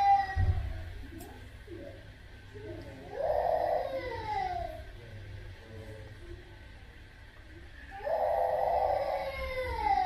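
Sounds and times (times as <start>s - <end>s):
wailing cry: 0.0s - 0.9s, 3.0s - 4.9s, 7.9s - 10.0s.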